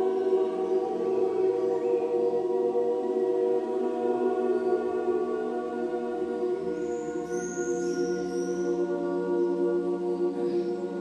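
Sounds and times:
group of singers holding chord: 0.0 - 11.0.

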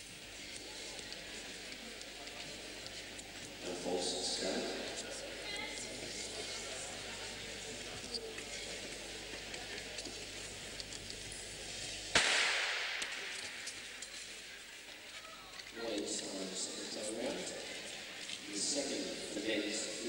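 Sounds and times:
murmur of spectators: 0.0 - 20.0
starter's pistol shot echoing: 12.2 - 13.7.

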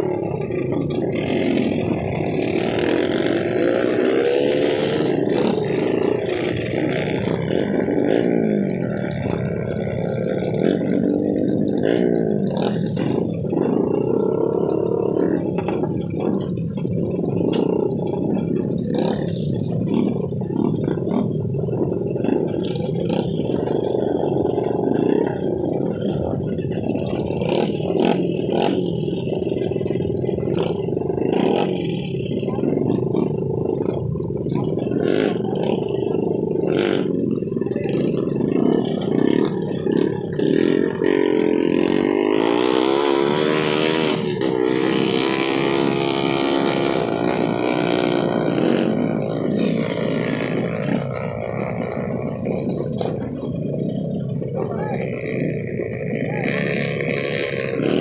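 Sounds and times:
motorcycle engine idling and revving: 0.0 - 58.0
small motorcycle engines running: 0.0 - 58.0.

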